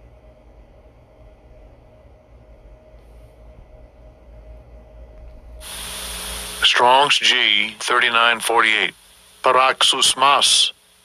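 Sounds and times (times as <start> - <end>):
low steady hum: 0.0 - 11.0
hiss: 5.6 - 6.7.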